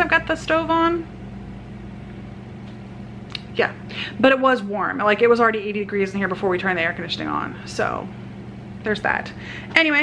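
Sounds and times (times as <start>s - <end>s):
household appliance humming: 0.0s - 10.0s.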